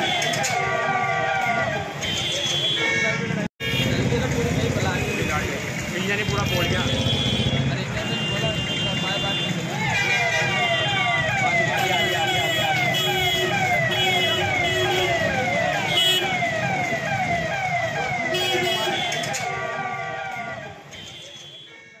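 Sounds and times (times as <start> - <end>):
emergency siren wailing: 0.0 - 2.0, 9.7 - 20.9.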